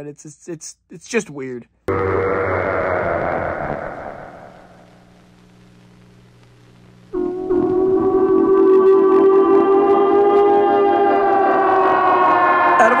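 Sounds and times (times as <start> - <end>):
siren-like held tone: 1.9 - 5.0, 7.1 - 13.0.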